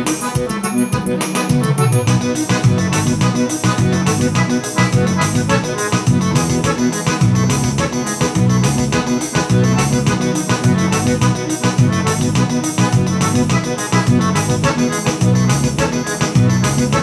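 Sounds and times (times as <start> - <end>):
accordion bass and chords: 0.0 - 17.0
piano accordion melody: 0.0 - 17.0.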